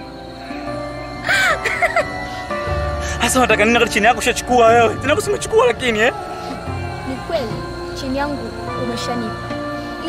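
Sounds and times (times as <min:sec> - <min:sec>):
film score with held notes: 0:00.0 - 0:10.0.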